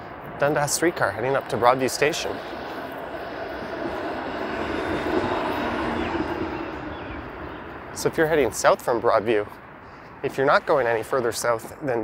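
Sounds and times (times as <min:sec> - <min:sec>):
streetcar electric drone: 0:00.0 - 0:08.8
streetcar rolling noise: 0:00.0 - 0:09.5.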